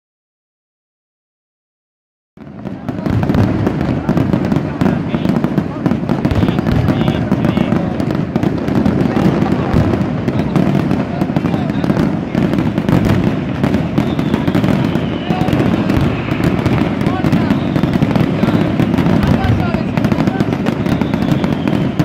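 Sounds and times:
fireworks bangs and crackles: 0:02.4 - 0:22.0.

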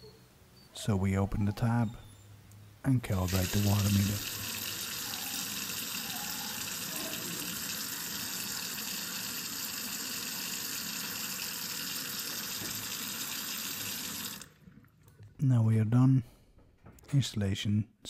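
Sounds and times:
tap running into sink: 0:12.4 - 0:13.2.

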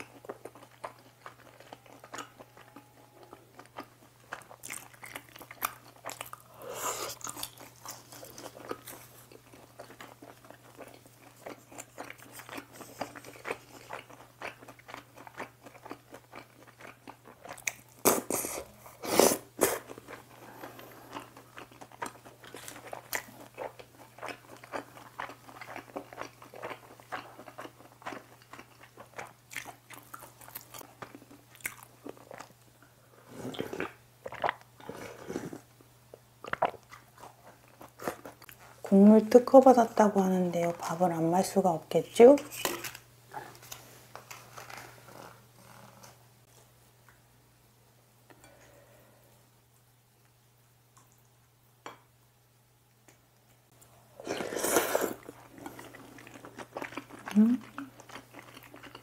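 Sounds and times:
chewing and crunching fried food: 0:00.0 - 0:32.8, 0:33.4 - 0:39.7, 0:53.1 - 0:59.0.

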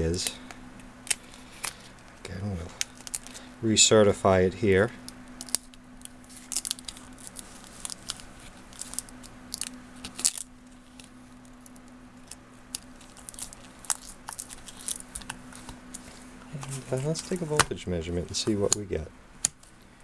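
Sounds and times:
paper label crinkling: 0:00.1 - 0:03.5, 0:05.4 - 0:17.7.

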